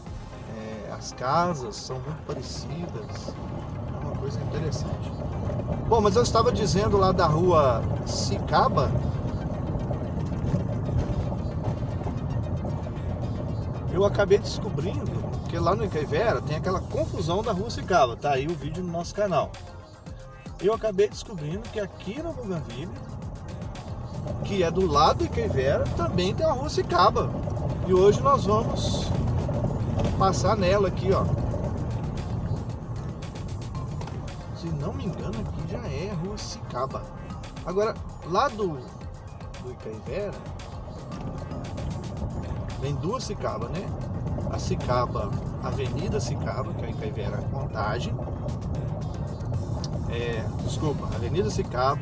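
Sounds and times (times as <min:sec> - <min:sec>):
background music: 0:00.0 - 0:52.0
car engine and tyres droning: 0:00.0 - 0:52.0.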